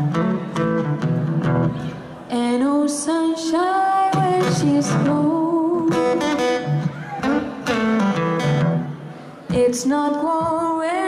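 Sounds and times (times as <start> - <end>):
acoustic guitar: 0.0 - 11.0
woman singing: 2.3 - 6.6, 9.5 - 11.0.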